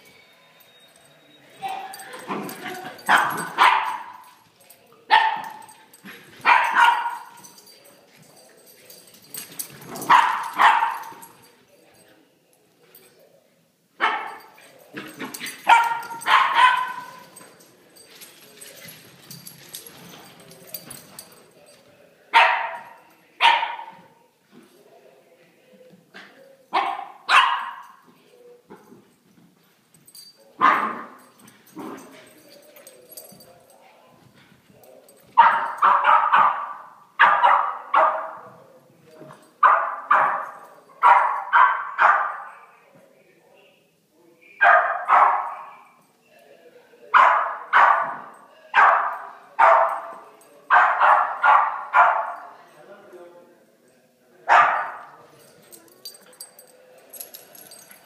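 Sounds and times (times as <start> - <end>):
puppies barking: 6.4 - 7.4, 15.5 - 17.3.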